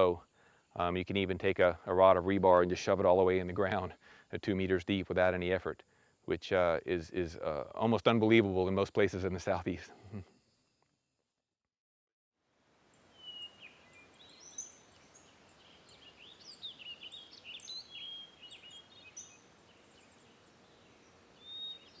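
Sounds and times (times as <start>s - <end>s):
faint outdoor hiss: 0.0s - 11.2s, 12.4s - 22.0s
birds chirping and whistling: 13.1s - 22.0s.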